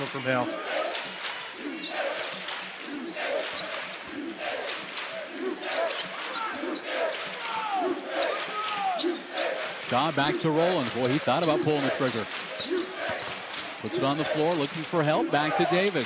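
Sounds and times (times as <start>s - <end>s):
crowd chatter: 0.0s - 16.0s
sneaker squeaks: 0.8s - 4.9s, 11.0s - 14.9s.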